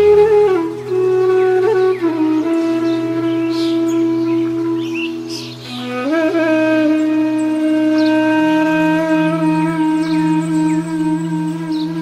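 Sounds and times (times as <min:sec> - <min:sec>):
flute note: 0:00.0 - 0:12.0.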